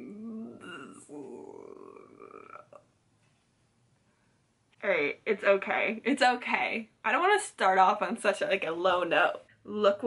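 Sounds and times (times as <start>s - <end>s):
woman's soft wordless voice: 0.0s - 2.8s.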